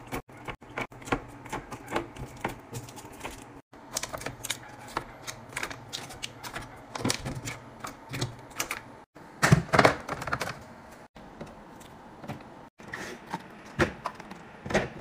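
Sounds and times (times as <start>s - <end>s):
plastic containers clicking and clattering: 1.5s - 10.7s.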